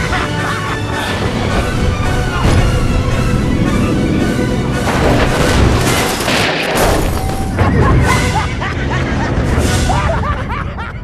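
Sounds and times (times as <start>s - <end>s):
loud metal car crash: 4.7s - 7.8s.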